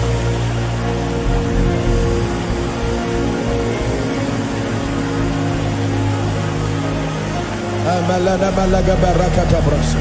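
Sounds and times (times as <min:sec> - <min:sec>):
worship music with deep bass: 0:00.0 - 0:10.0.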